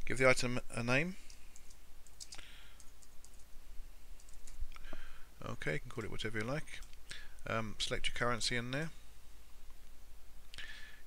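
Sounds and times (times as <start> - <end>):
keyboard typing: 1.3 - 3.5, 4.2 - 4.6.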